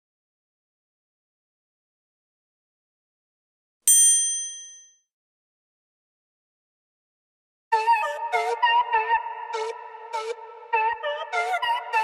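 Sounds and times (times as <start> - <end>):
notification bell ding: 3.9 - 4.9.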